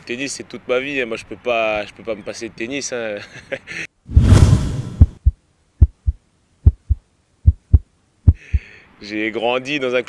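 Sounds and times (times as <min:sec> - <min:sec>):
heartbeat double thumps: 0:04.9 - 0:08.6.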